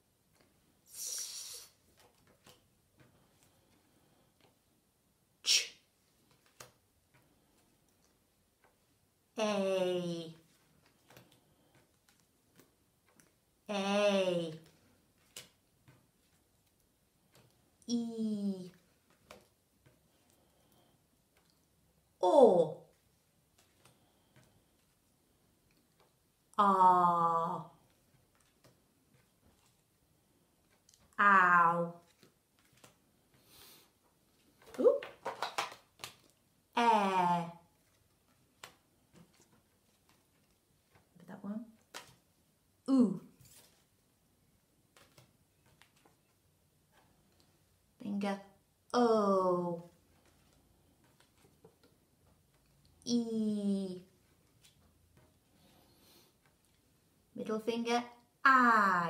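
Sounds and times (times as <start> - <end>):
paper cards rustling: 1.4 - 4.6, 6.0 - 8.8, 10.3 - 13.5, 14.5 - 17.8, 18.7 - 21.8, 27.8 - 31.1, 32.0 - 36.5, 37.7 - 42.4, 43.3 - 47.7, 49.9 - 53.0, 54.0 - 57.1
flashcards clicking: 1.7 - 3.6, 14.5 - 17.6, 32.0 - 33.7, 34.3 - 36.4, 37.8 - 41.0, 41.7 - 42.3, 44.9 - 46.3.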